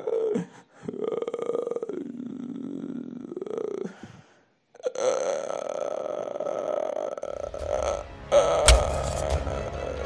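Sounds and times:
person's croaking guttural growl: 0:00.0 - 0:04.0, 0:04.7 - 0:08.7.

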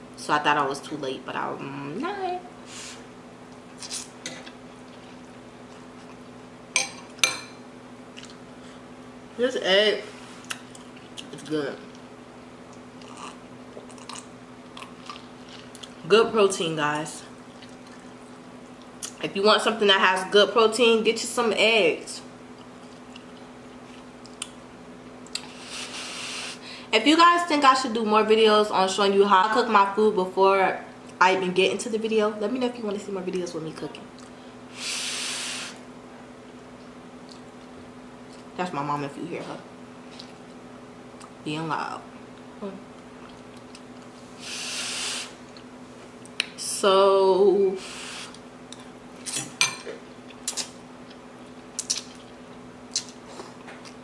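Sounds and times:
faint steady hum: 0:00.0 - 0:54.0
person chewing noodles: 0:12.7 - 0:16.0, 0:17.4 - 0:19.1, 0:22.6 - 0:24.6, 0:42.4 - 0:44.1
person breathing out hissing: 0:25.5 - 0:26.9, 0:34.7 - 0:35.8, 0:44.4 - 0:45.4, 0:47.8 - 0:48.3.

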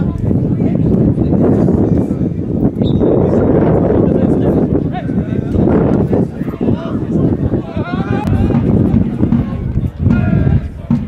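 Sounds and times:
people shouting and calling: 0:06.3 - 0:11.0.

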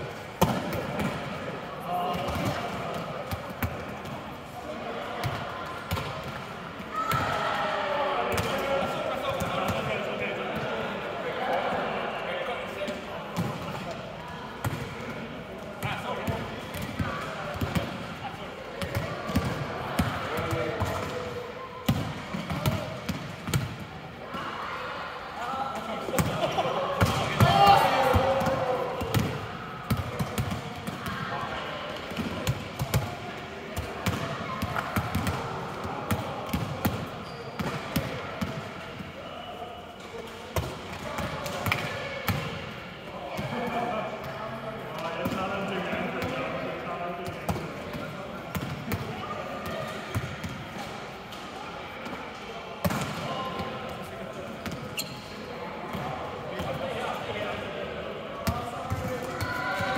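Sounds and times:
volleyballs smacking and bouncing: 0:00.4 - 0:04.4, 0:05.2 - 0:06.5, 0:14.6 - 0:18.1, 0:18.7 - 0:23.9, 0:26.1 - 0:31.2, 0:31.9 - 0:39.0, 0:40.2 - 0:42.7, 0:47.2 - 0:54.9.

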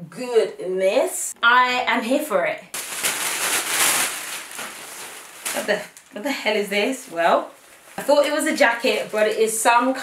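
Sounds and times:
plastic bag crinkling: 0:02.8 - 0:09.7.

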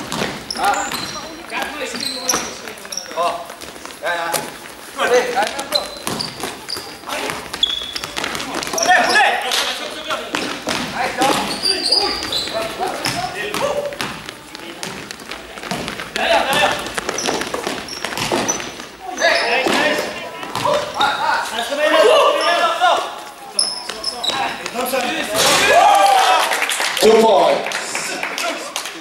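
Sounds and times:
basketball bouncing on floor: 0:00.0 - 0:04.5, 0:05.3 - 0:09.1, 0:10.3 - 0:18.9, 0:19.6 - 0:21.2
footfalls on court: 0:00.0 - 0:21.6, 0:23.0 - 0:26.3
shoes squeaking on court: 0:00.0 - 0:25.6
players calling out: 0:00.0 - 0:28.6.

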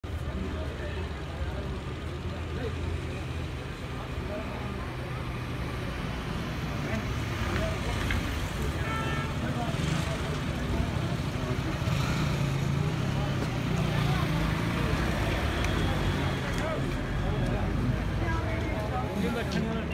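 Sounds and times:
car and van engines passing: 0:00.0 - 0:19.9.

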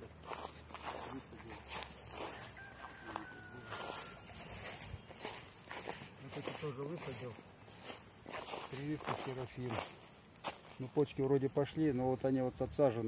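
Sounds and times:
distant rooster crowing: 0:01.7 - 0:05.4.

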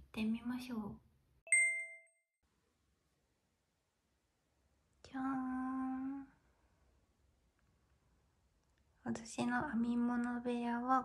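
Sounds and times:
bright chime ding: 0:01.5 - 0:02.2.

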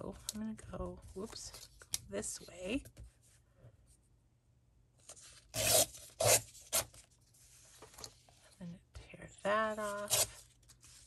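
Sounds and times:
paper tearing: 0:05.3 - 0:07.0, 0:09.8 - 0:11.0.

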